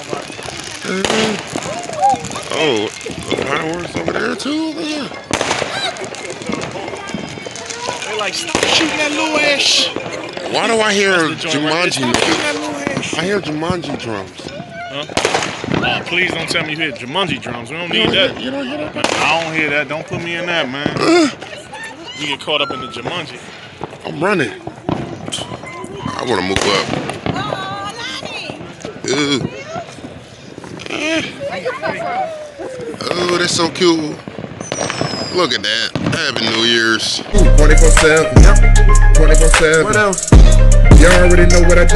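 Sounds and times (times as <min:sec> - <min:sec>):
firework bang: 0:00.0 - 0:21.6, 0:22.9 - 0:28.8, 0:33.0 - 0:38.6
fireworks crackling: 0:00.0 - 0:41.9
people talking and calling out: 0:00.0 - 0:41.9.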